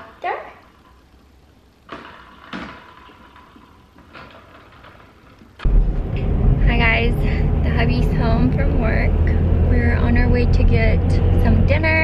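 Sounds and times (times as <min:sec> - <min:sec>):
car cabin rumble while driving: 0:05.6 - 0:12.0.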